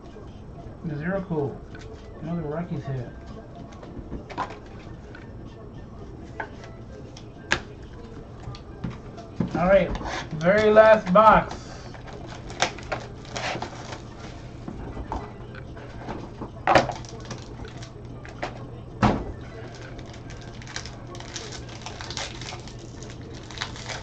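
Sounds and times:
cardboard and plastic rustling: 8.8s - 24.0s.

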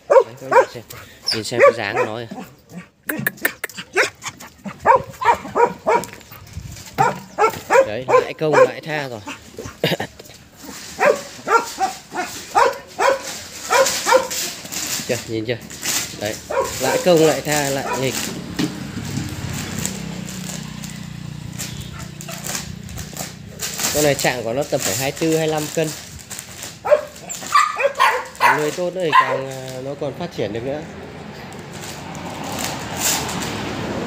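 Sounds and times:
dog barking: 0.0s - 6.2s, 7.0s - 9.4s, 11.0s - 14.4s, 16.4s - 18.2s, 21.9s - 22.5s, 26.8s - 29.5s.

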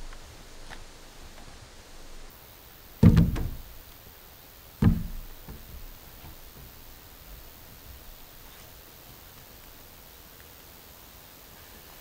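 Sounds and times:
wooden logs thumping together: 3.0s - 4.0s, 4.7s - 8.2s.

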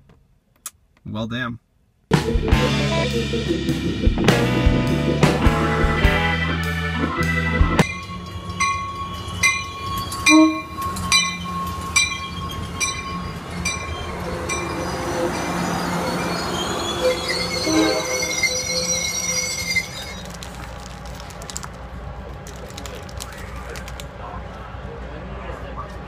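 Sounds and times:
train wheel squeal: 7.8s - 20.4s.

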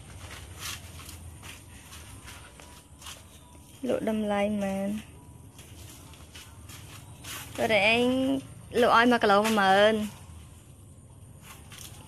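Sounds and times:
soft footsteps: 0.0s - 8.6s
person speaking: 7.4s - 10.2s.

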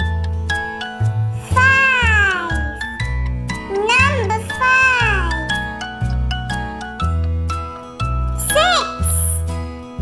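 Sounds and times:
background music with bass: 0.0s - 10.0s.

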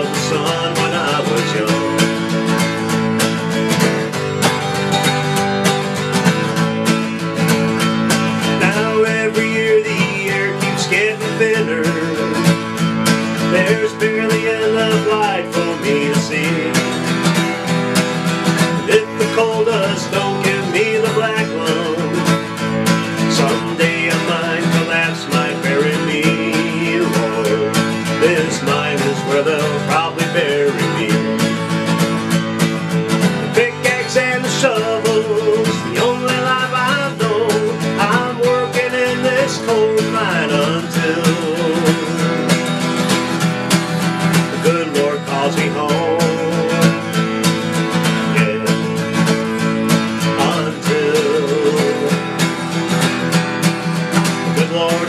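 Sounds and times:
man singing: 0.0s - 4.2s, 6.8s - 32.2s, 33.2s - 55.0s
acoustic guitar strummed: 0.0s - 55.0s.

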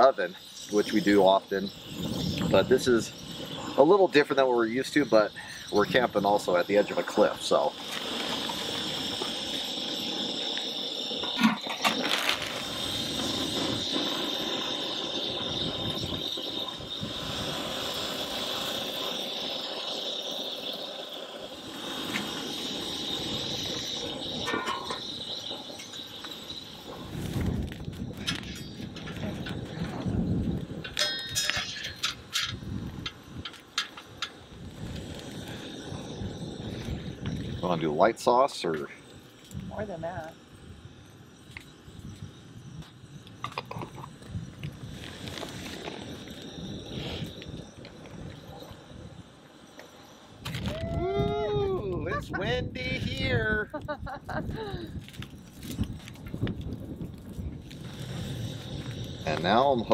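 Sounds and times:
wind gusts on microphone: 0.0s - 9.6s, 11.3s - 19.6s, 21.8s - 49.4s, 50.3s - 59.9s
propane burner hissing: 0.0s - 59.9s.

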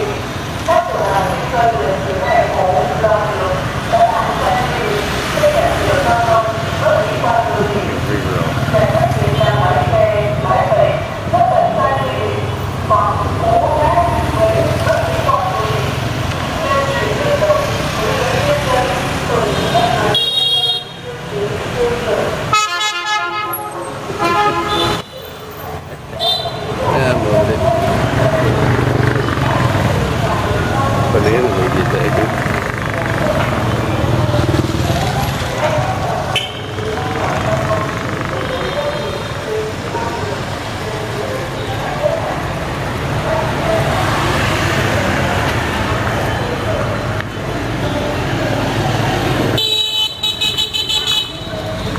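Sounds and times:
people talking: 0.0s - 22.6s, 23.6s - 49.6s
traffic engines rumbling: 0.0s - 51.9s
vehicle horns honking: 19.4s - 21.0s, 22.5s - 25.3s, 26.2s - 26.8s, 36.3s - 36.8s, 49.6s - 51.9s.

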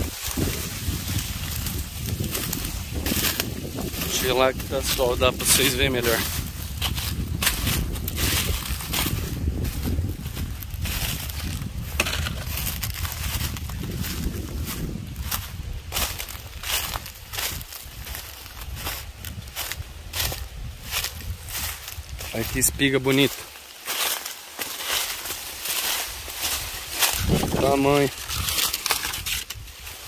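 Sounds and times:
footsteps crunching through corn stalks: 0.0s - 30.0s.

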